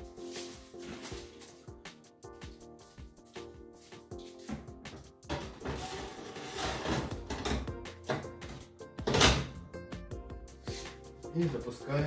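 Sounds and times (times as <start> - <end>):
background music: 0.0 - 12.0
metal trays scraping on oven racks: 5.6 - 7.5.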